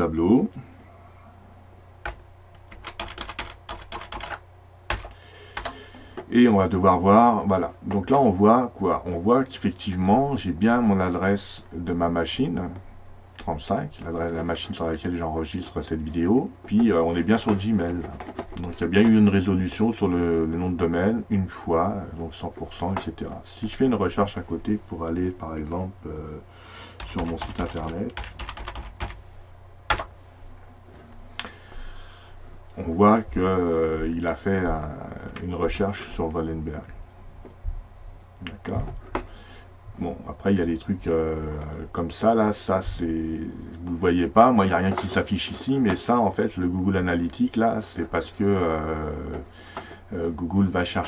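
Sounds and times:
computer keyboard typing: 0:02.0 - 0:05.8, 0:27.0 - 0:29.2, 0:29.9 - 0:30.1.

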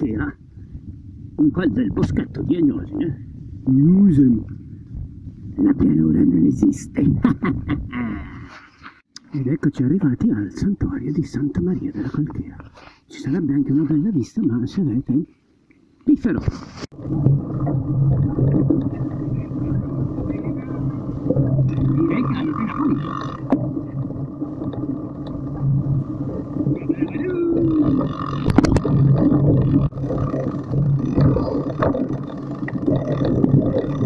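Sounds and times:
steady low riding hum: 0:00.0 - 0:06.5, 0:16.9 - 0:34.0
bike rattling: 0:17.0 - 0:34.0.

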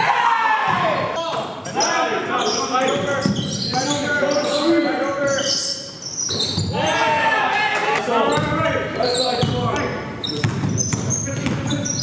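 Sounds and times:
players calling out: 0:00.0 - 0:12.0
basketball bouncing on wooden court: 0:08.3 - 0:08.6, 0:09.4 - 0:12.0.

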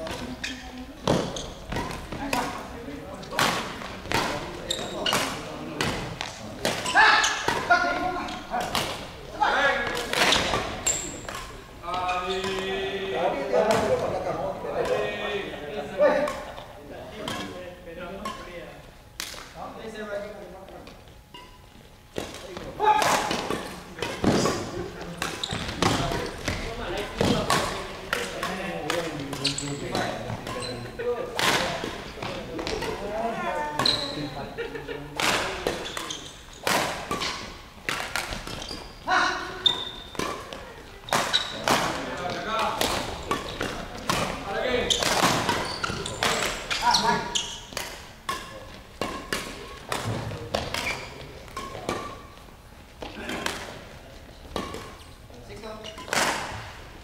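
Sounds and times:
badminton rackets hitting shuttlecocks: 0:01.0 - 0:09.2, 0:09.8 - 0:11.6, 0:22.2 - 0:33.1, 0:35.2 - 0:52.5, 0:54.4 - 0:55.0, 0:55.9 - 0:56.8.

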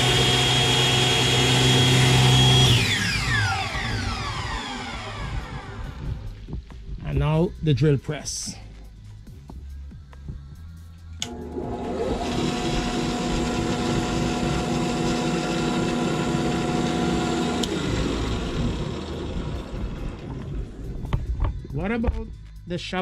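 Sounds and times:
drill press running: 0:00.0 - 0:06.0, 0:11.2 - 0:20.9.

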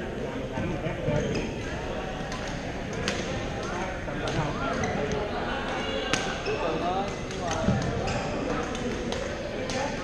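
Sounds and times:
voices in a gym hall: 0:00.0 - 0:10.0.

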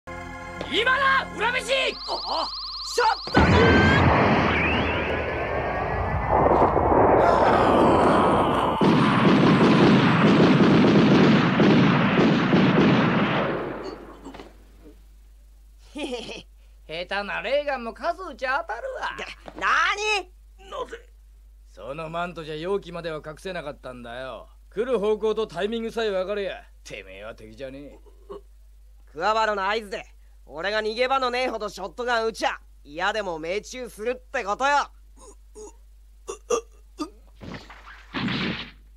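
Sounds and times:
energy blast impacts: 0:01.7 - 0:14.2
cartoon hiccup-like gasps: 0:35.2 - 0:37.3.

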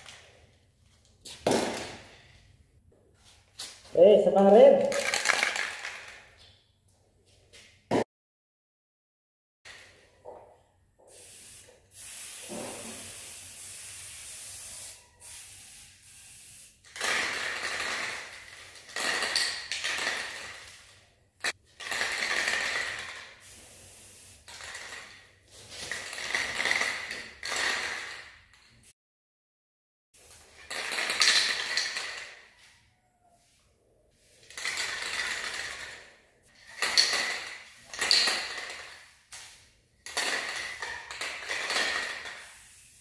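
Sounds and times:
spray-paint can hissing: 0:11.0 - 0:16.9, 0:23.2 - 0:24.7, 0:42.3 - 0:43.0.

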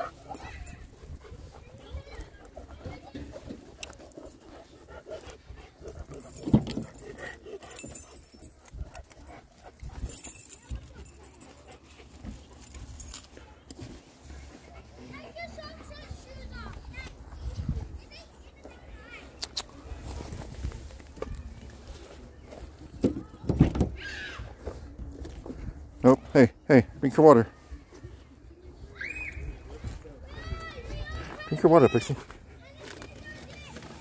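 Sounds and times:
dog panting: 0:00.0 - 0:13.1
handling and jingling noises: 0:00.0 - 0:23.7, 0:24.4 - 0:34.0.

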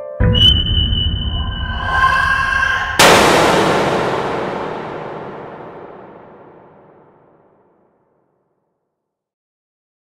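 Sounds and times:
steady high tone: 0:00.3 - 0:04.8
low rumbling drone: 0:00.3 - 0:07.2
sudden loud hit: 0:00.4 - 0:07.8.

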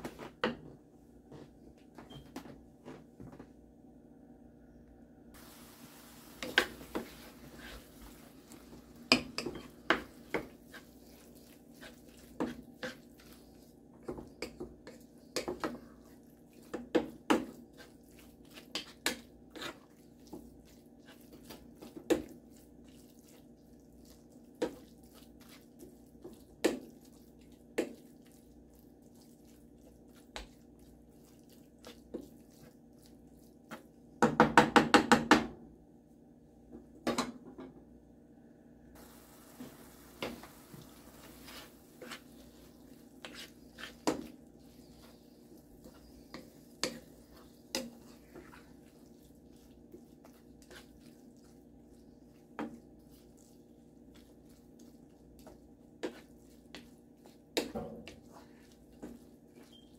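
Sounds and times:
wooden spatula knocking frying pan: 0:34.2 - 0:35.5.

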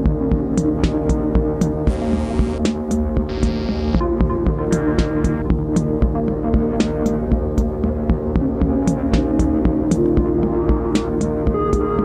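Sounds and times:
synth bass: 0:00.0 - 0:12.0
drum-machine hits: 0:01.9 - 0:05.7.

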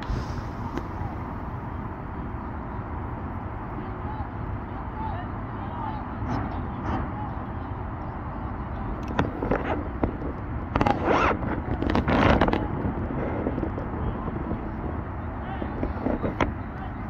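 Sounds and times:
low outdoor background noise: 0:00.0 - 0:17.0
voices shouting outdoors: 0:00.8 - 0:09.1.

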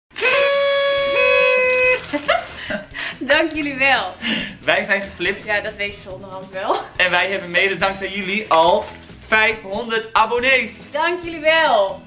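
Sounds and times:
party noisemaker horns tooting: 0:00.1 - 0:02.2.

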